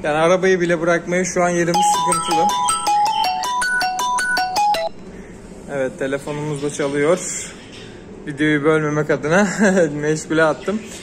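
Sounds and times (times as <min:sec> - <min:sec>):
mobile phone ringtone: 0:01.7 - 0:05.0.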